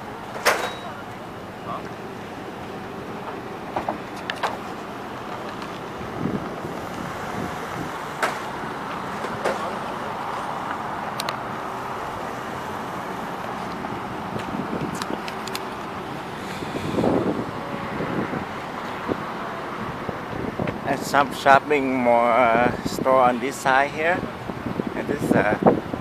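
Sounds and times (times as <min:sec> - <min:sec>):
cars driving past: 0:00.0 - 0:26.0.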